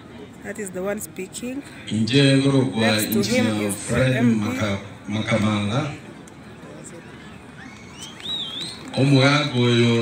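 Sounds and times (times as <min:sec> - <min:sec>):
outdoor crowd hubbub: 0:00.0 - 0:10.0.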